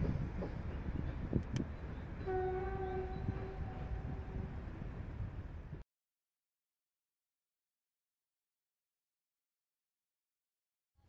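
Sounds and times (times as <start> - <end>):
train horn blast: 2.2 - 4.6.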